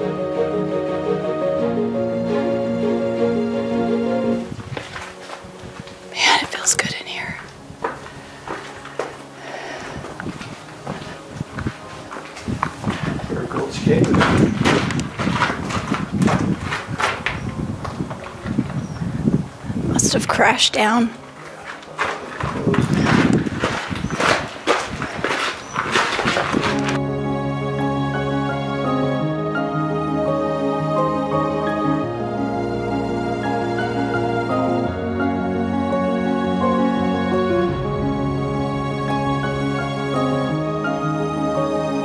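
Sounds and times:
footsteps on rocky sandy floor: 0:04.4 - 0:19.1, 0:21.2 - 0:27.0
person whispering: 0:06.1 - 0:07.5.

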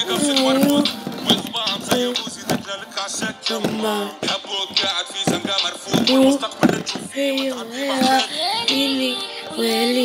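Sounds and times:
high voice singing: 0:00.0 - 0:10.0.

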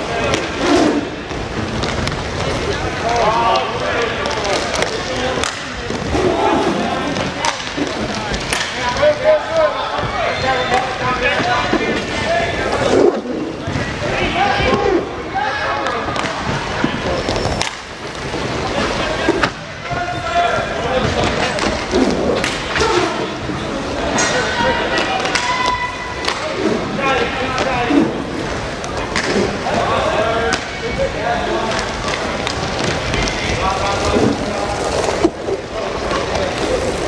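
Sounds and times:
skate wheels rolling on floor: 0:00.0 - 0:37.0
sharp clacks of sticks and puck: 0:01.3 - 0:06.1, 0:07.1 - 0:09.6, 0:15.8 - 0:19.6, 0:21.1 - 0:23.0, 0:24.1 - 0:26.8, 0:28.4 - 0:29.8, 0:30.4 - 0:30.8, 0:31.7 - 0:35.4.

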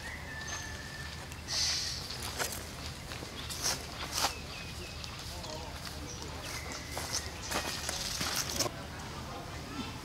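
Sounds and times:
monkeys scuffling on sandy ground: 0:00.0 - 0:08.7.

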